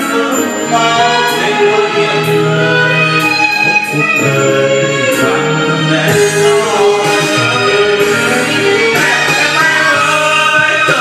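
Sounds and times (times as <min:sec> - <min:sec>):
karaoke backing track: 0:00.0 - 0:11.0
man singing into microphone: 0:00.0 - 0:11.0.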